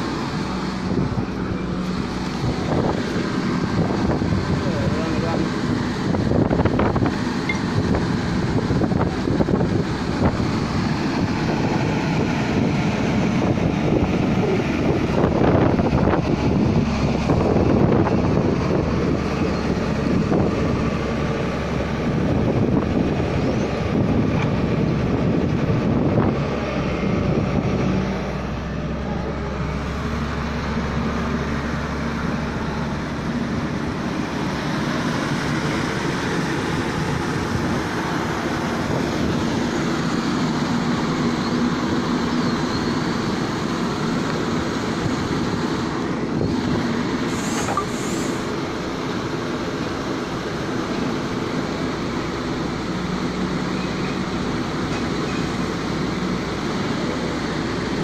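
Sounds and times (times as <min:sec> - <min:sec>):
excavator diesel engine running: 0:00.0 - 0:58.0
wind on microphone: 0:00.8 - 0:28.5.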